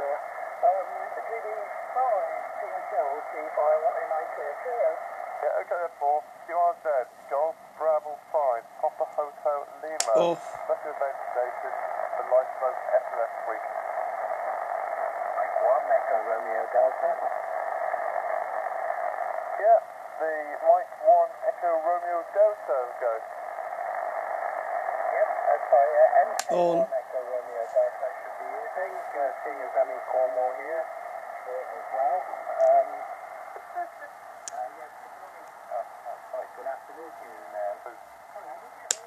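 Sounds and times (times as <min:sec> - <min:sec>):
radio receiver static hiss: 0:00.0 - 0:39.0.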